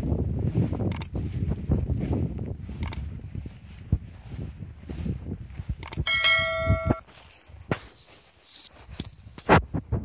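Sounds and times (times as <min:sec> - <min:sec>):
struck bell tone: 0:06.1 - 0:07.1.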